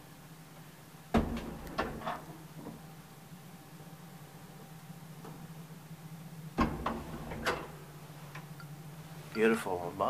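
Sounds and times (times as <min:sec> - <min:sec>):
steady low hum: 0:00.0 - 0:10.0
elevator mechanism heavy clunk: 0:01.1 - 0:02.8, 0:06.5 - 0:07.9.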